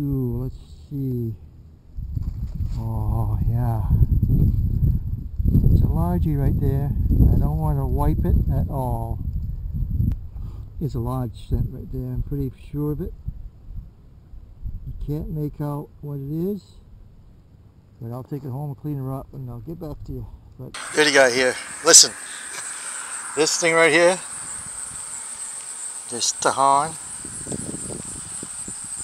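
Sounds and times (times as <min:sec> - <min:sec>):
wind rumble on microphone: 0:00.0 - 0:16.1, 0:16.7 - 0:21.0, 0:24.2 - 0:29.0
man talking: 0:20.8 - 0:24.3, 0:26.1 - 0:27.0
high insect trill: 0:20.8 - 0:29.0.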